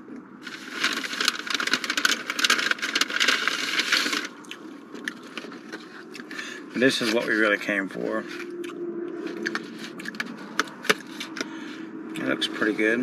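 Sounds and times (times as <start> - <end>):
paper bag rustling and crinkling: 0.4 - 8.4, 9.2 - 11.7.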